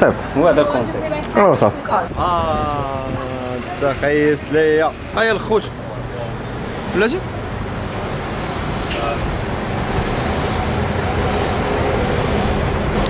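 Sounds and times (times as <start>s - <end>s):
passing vehicles rumbling: 0.0s - 13.0s.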